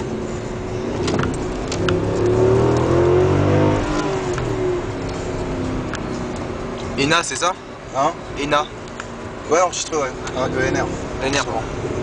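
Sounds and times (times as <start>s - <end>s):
car engine accelerating hard: 0.0s - 12.0s.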